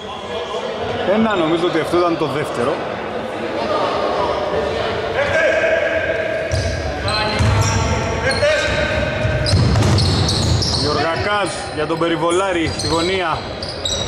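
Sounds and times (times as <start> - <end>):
sneakers squeaking: 6.3 - 14.0
basketball bouncing on floor: 9.2 - 10.8.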